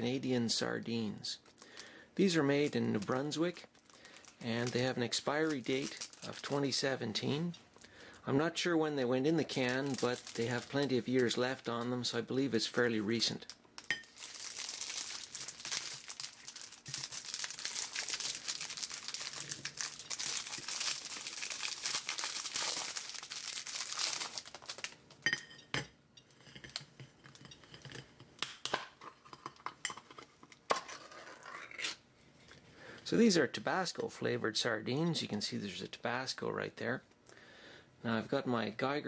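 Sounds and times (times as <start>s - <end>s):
plastic wrapper crinkling and tearing: 2.6s - 6.7s, 9.4s - 11.4s, 13.4s - 25.2s.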